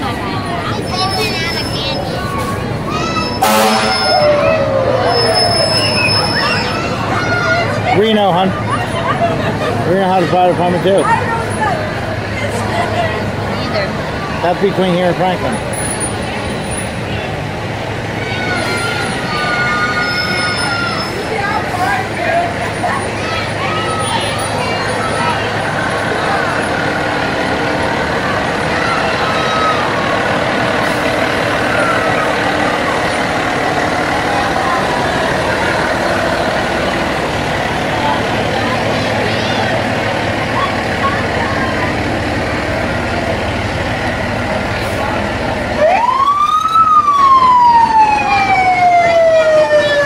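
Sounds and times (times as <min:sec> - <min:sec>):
fire engine siren wailing: 0:00.0 - 0:16.5, 0:17.2 - 0:50.0
crowd chatter: 0:00.0 - 0:50.0
fire engine running: 0:00.0 - 0:50.0.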